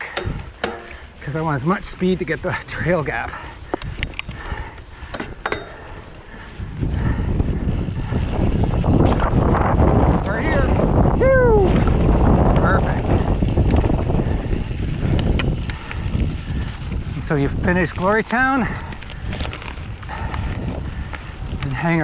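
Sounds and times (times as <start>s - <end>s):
bike tyres rolling: 0.0s - 22.0s
wind rushing over microphone: 0.0s - 22.0s.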